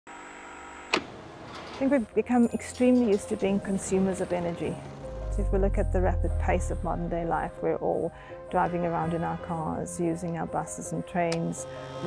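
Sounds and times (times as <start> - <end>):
tv static hiss: 0.1 - 1.0.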